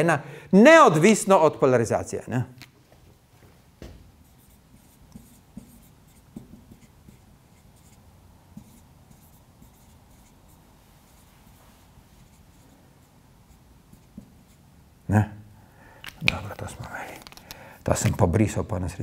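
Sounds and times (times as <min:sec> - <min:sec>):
light marker taps: 0:03.8 - 0:07.2, 0:16.0 - 0:18.2
marker writing on whiteboard: 0:03.8 - 0:14.8, 0:16.0 - 0:18.1.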